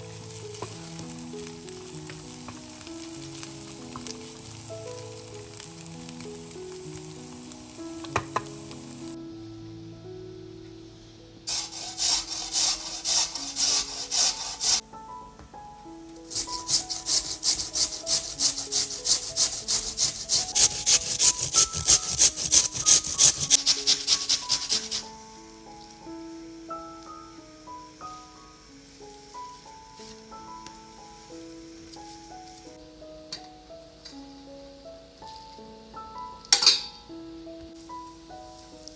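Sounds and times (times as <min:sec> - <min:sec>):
soft background music: 0:00.0 - 0:38.9
potatoes grated on metal grater: 0:11.5 - 0:14.8, 0:16.3 - 0:25.0.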